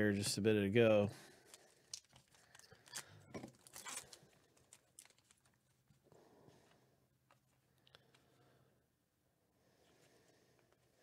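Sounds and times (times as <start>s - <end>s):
wrapper tearing and crinkling: 1.8s - 5.6s.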